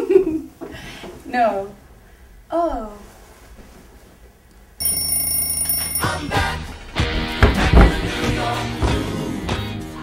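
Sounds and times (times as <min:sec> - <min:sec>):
alarm clock ringing: 0:04.8 - 0:06.6.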